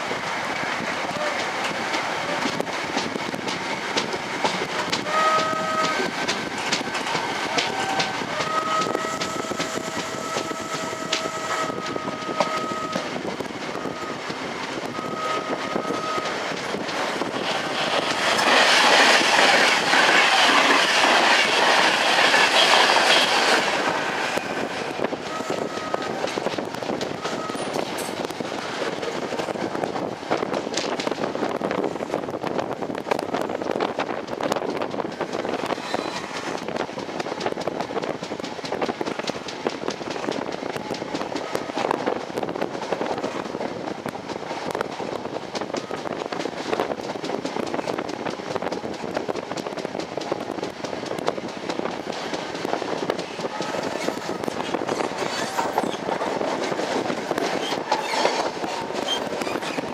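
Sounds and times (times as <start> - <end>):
train wheels rushing on rail: 0.0 - 59.9.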